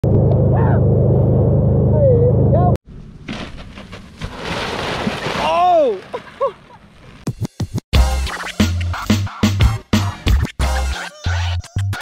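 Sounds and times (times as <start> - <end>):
boat engine drone: 0.0 - 2.8.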